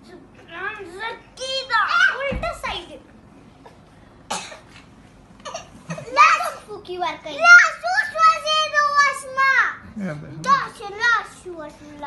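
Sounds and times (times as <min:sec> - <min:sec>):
person coughing: 0:04.3 - 0:04.7.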